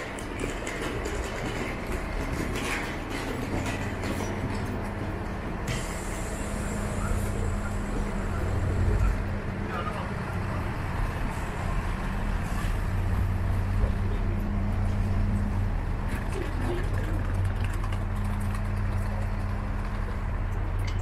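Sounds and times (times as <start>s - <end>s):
street traffic: 0.0s - 21.0s
hiss: 5.7s - 9.0s
vehicle engine idling: 5.7s - 21.0s.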